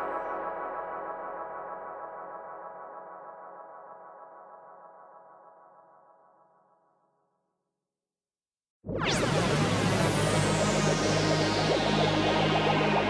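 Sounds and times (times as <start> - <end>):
sustained synthesizer chord: 8.9 - 13.0.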